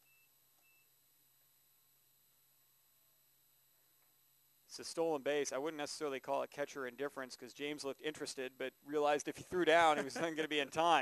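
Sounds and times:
faint high beeps: 0.0 - 1.0
steady low hum: 0.0 - 11.0.

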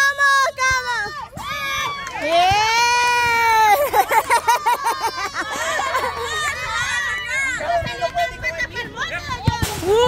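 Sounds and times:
players and onlookers shouting: 4.9 - 10.0.

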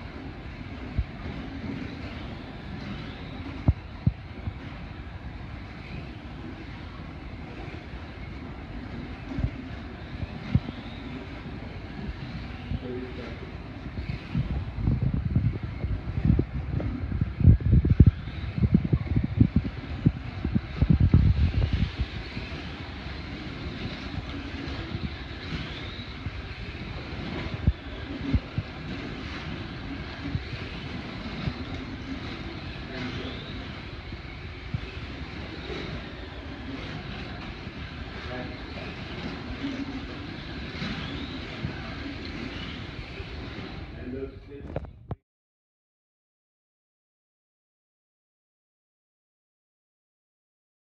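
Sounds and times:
low thumps and rumbling: 0.0 - 45.2
slot car motors whirring: 0.1 - 44.1.

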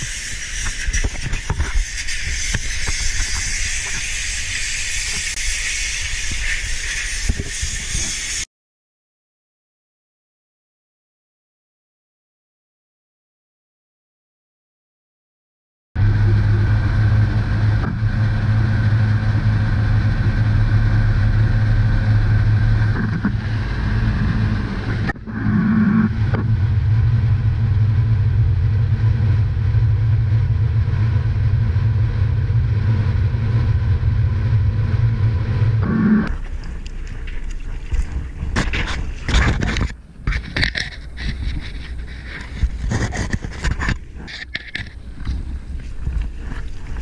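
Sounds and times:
boat engine humming: 0.0 - 8.4, 16.0 - 47.0.

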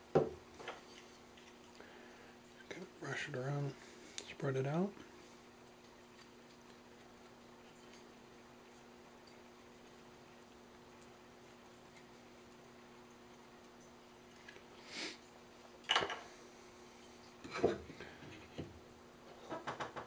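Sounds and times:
steady low hum: 0.0 - 19.3.

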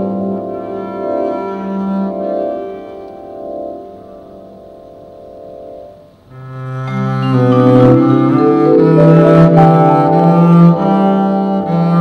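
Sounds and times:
vibraphone chord ringing: 6.9 - 10.9.

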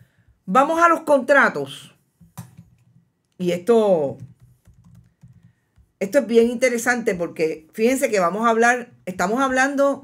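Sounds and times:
woman speaking: 0.5 - 2.0, 3.4 - 4.4, 6.0 - 10.0
laptop keyboard taps: 2.2 - 3.1, 4.2 - 5.9.

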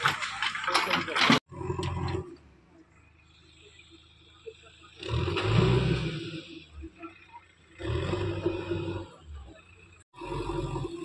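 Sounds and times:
diesel engine revving hard: 3.2 - 11.0.

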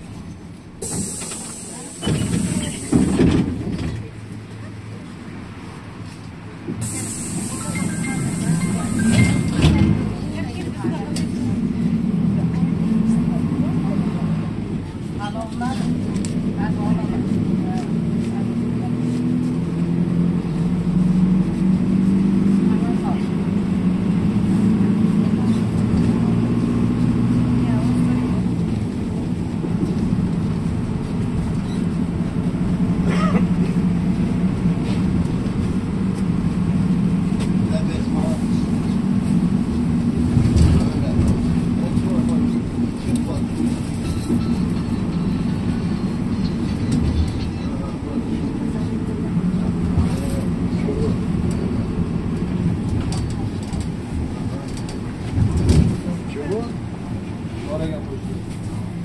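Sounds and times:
road noise: 0.0 - 59.0
vehicle engine drone: 0.0 - 59.0.

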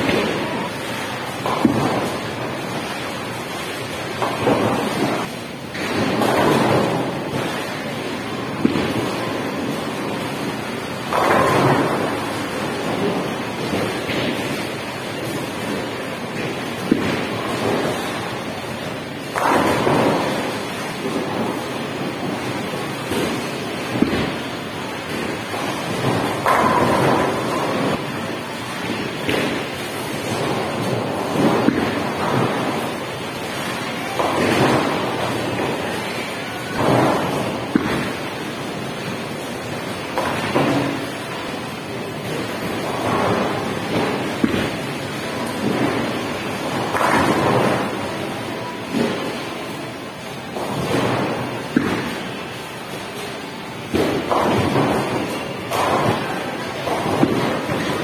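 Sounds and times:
bowling balls rolling: 0.0 - 58.0.

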